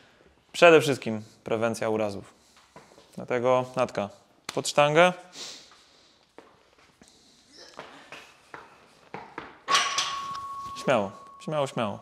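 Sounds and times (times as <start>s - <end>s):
soft shuffling footsteps: 2.2s - 3.4s
metal bar clanking and ringing: 9.7s - 11.5s.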